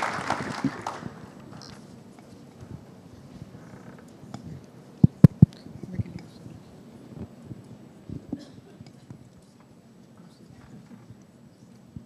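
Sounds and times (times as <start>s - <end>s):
microphones being handled: 0.5s - 12.0s.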